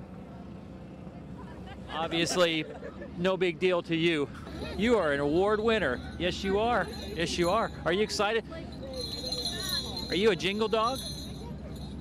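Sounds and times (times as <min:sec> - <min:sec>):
vehicle engines idling: 0:00.0 - 0:12.0.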